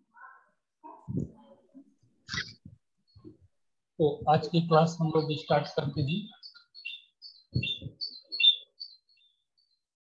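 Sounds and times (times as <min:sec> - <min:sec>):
bird chirping: 0:02.2 - 0:10.0.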